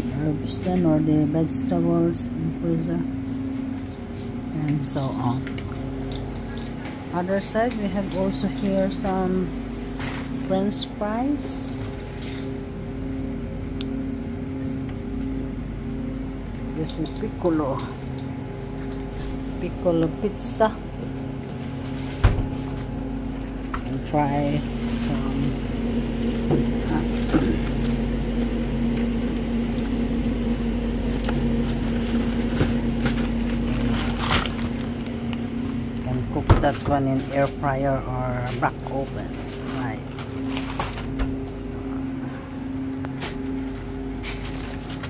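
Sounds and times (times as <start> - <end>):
freezer cabinets humming: 0.0 - 45.0.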